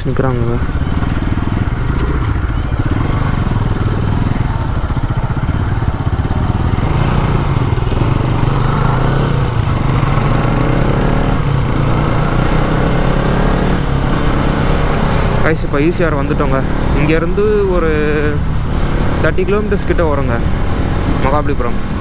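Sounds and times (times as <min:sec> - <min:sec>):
motorcycle engine running: 0:00.0 - 0:22.0.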